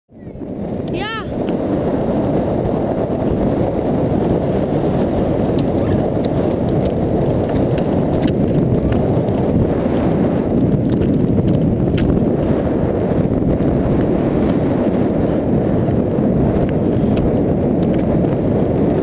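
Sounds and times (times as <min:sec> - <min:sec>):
wind blowing on microphone: 0:00.1 - 0:19.0
wheels rolling over hard sand: 0:01.5 - 0:19.0.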